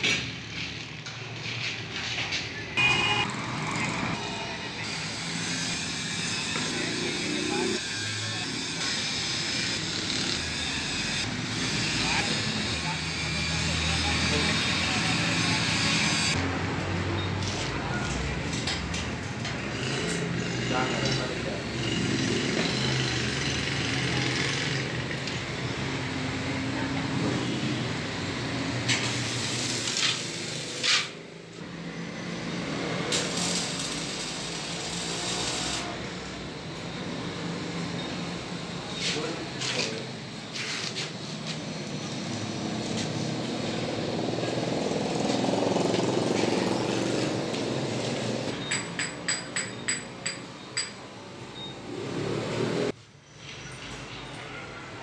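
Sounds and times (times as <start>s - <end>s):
arc welding crackle and hiss: 28.8s - 31.2s, 33.0s - 36.0s.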